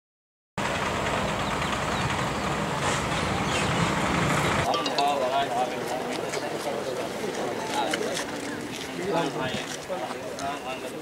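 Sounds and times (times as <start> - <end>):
vehicle engine rumbling: 0.6 - 7.6
street noise: 0.6 - 11.0
crowd talking: 4.6 - 11.0.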